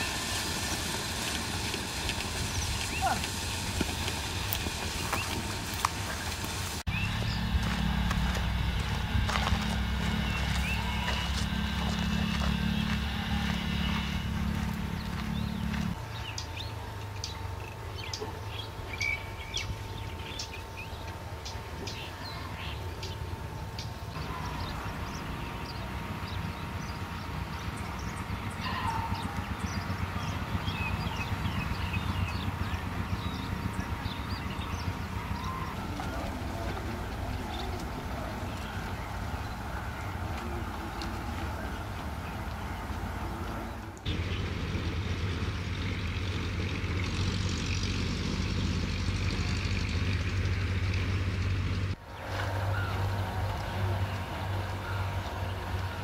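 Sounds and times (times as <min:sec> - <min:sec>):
low steady rumble: 0:00.0 - 0:56.0.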